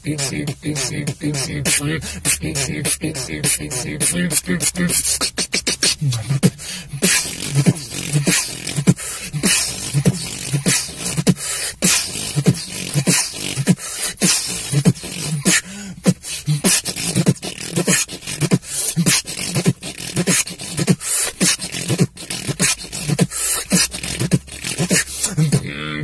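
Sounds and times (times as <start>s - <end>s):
beatboxed bass tones: 0.0s - 26.0s
beatboxing mouth percussion: 0.0s - 26.0s.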